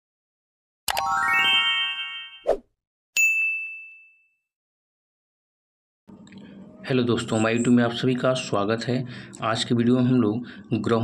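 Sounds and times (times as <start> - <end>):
rising run of chime notes: 1.0 - 2.4
bright bell ding: 3.2 - 4.4.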